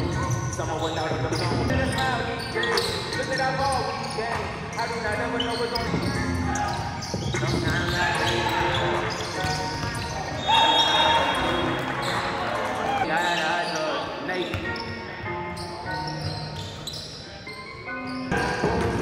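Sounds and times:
music: 0.0 - 19.0.

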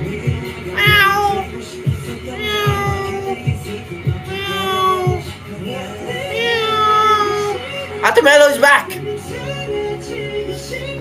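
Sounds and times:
background music with a beat: 0.0 - 8.0, 8.8 - 11.0
long downward-sliding meows: 0.7 - 1.5, 2.3 - 3.5, 4.2 - 5.3, 6.2 - 7.7.

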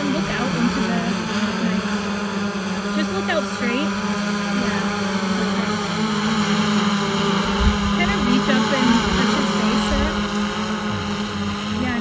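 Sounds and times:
drone propellers humming: 0.0 - 12.0.

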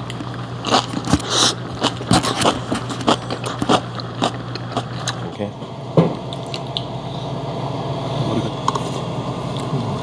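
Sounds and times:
man chewing: 0.0 - 5.2
steady low hum: 0.0 - 10.0.

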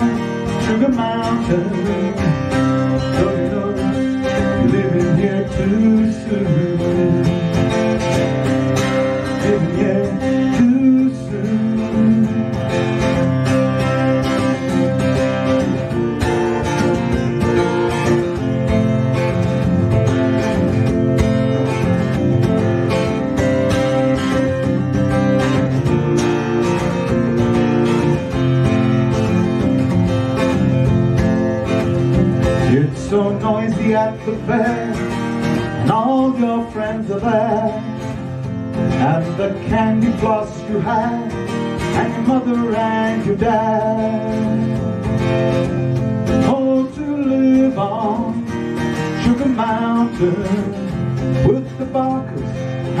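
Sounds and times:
acoustic guitar strumming: 0.0 - 53.0.

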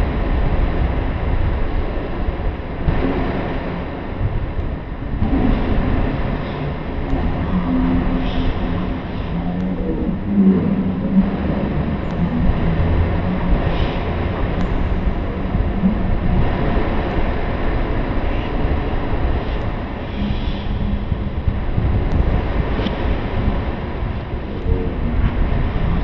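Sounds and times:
dense low rumble: 0.0 - 26.0
faint humming tones: 0.0 - 26.0.

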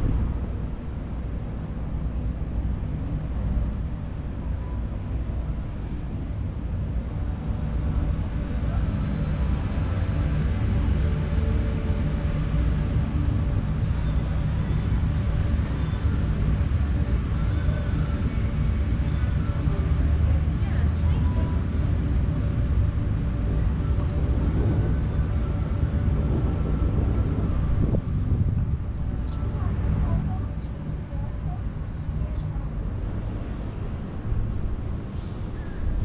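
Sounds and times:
low outdoor rumble: 0.0 - 36.0.

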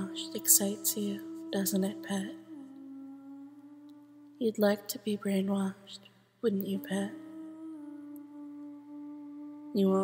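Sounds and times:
woman humming: 0.0 - 4.9, 6.5 - 10.0.

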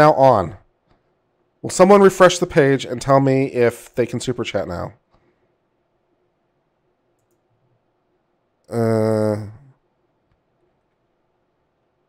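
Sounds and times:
faint steady hum: 0.0 - 12.0
faint clicks: 7.1 - 7.5.

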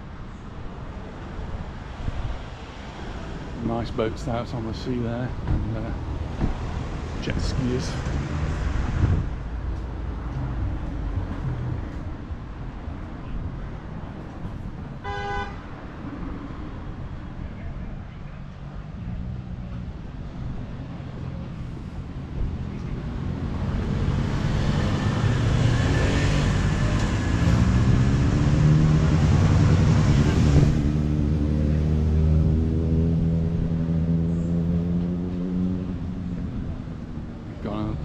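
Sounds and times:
traffic noise: 0.0 - 38.0.

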